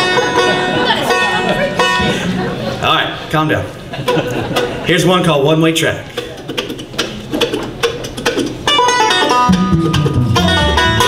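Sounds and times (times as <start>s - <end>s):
banjo single notes plucked: 0.0s - 2.6s, 7.0s - 11.0s.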